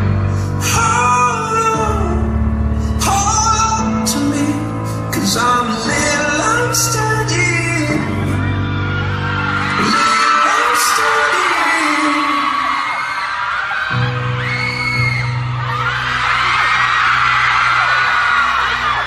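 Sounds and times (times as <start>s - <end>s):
crowd screaming: 5.9s - 19.0s.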